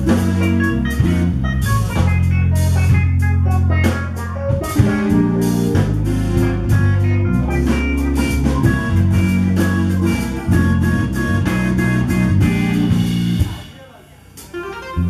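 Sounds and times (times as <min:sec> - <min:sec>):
electric bass guitar: 0:00.0 - 0:13.7, 0:14.5 - 0:15.0
drum kit beat: 0:00.0 - 0:15.0
keyboard chords: 0:00.0 - 0:15.0.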